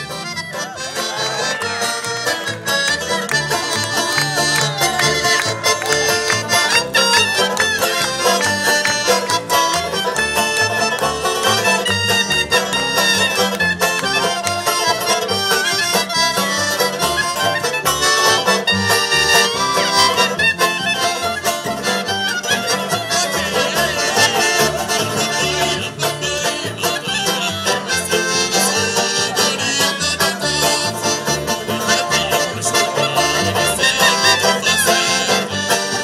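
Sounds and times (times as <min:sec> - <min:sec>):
folk dance band music: 0:00.0 - 0:36.0.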